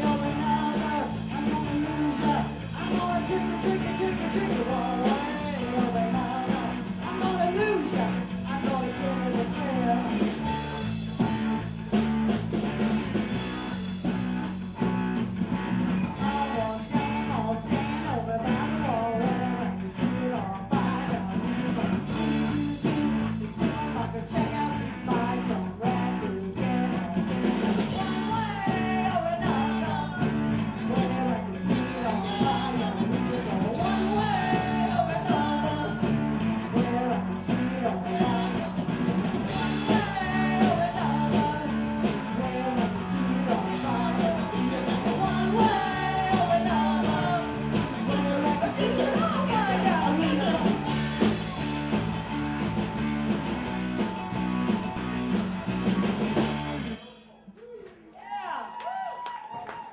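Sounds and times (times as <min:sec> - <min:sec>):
lead vocal singing: 0:00.0 - 0:10.6, 0:16.0 - 0:52.1
electric guitars: 0:00.0 - 0:57.2
keyboard: 0:00.0 - 0:57.2
bass guitar: 0:00.0 - 0:57.5
drums driving a steady beat: 0:00.0 - 0:57.5.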